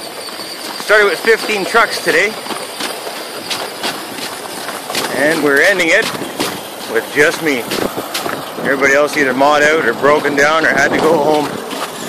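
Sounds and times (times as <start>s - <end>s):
footsteps crunching in snow: 0.0s - 12.0s
rc truck motor and gears: 0.0s - 12.0s
tyres crunching on snow: 0.0s - 12.0s.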